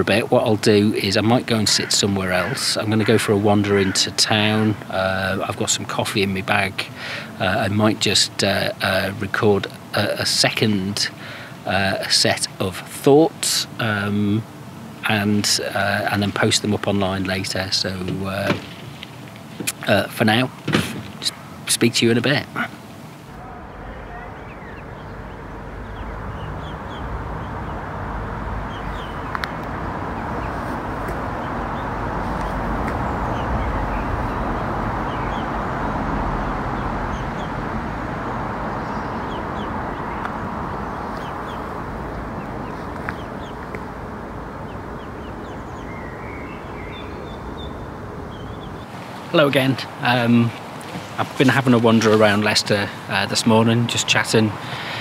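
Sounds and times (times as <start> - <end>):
ducks calling: 0.0 - 9.1, 21.1 - 55.0
steady outdoor noise: 0.0 - 55.0.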